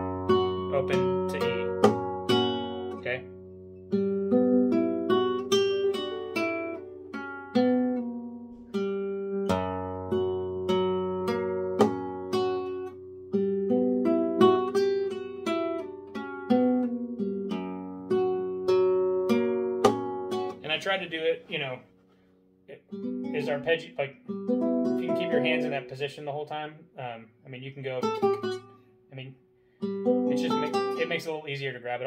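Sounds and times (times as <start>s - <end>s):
flamenco guitar arpeggios: 0.0s - 20.8s, 22.8s - 26.0s, 28.0s - 28.9s, 29.8s - 31.4s.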